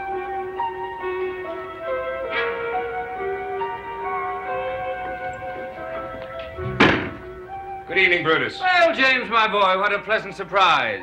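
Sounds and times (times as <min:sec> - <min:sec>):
background music of held notes: 0:00.0 - 0:11.0
door shutting with heavy thunk: 0:06.5 - 0:07.4.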